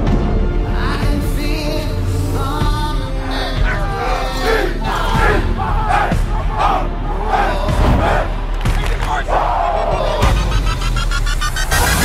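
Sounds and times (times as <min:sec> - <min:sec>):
group of men shouting: 0:03.2 - 0:10.7.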